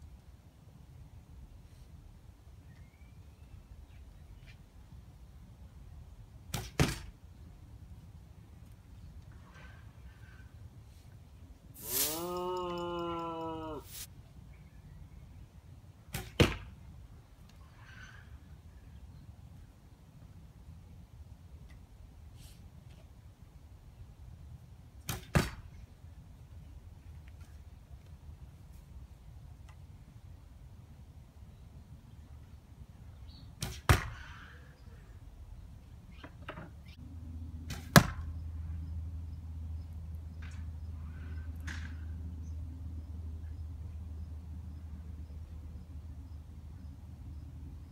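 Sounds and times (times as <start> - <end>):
arrow smacking cardboard target: 6.5 - 7.1, 16.1 - 16.8, 25.0 - 25.7, 33.6 - 34.3, 37.7 - 38.3.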